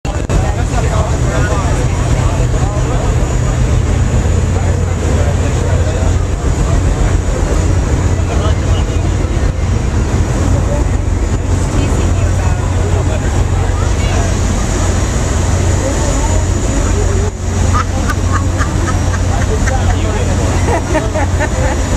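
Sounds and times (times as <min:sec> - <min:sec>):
ferry engines droning: 0:00.0 - 0:21.9
passengers chattering: 0:00.0 - 0:21.9.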